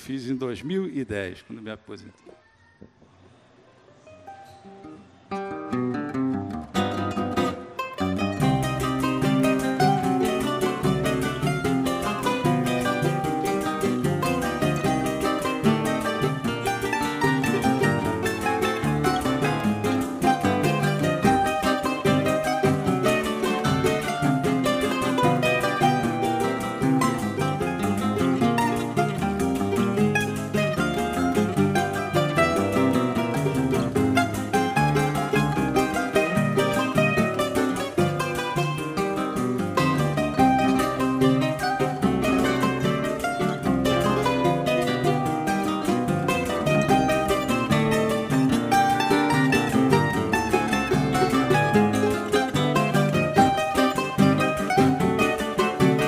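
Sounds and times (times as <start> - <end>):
mandolin melody: 4.0 - 56.0
acoustic guitars strummed: 4.2 - 56.0.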